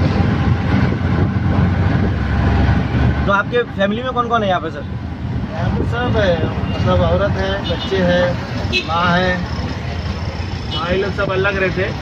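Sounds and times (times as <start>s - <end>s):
auto rickshaw engine running: 0.0s - 12.0s
road noise: 0.0s - 12.0s.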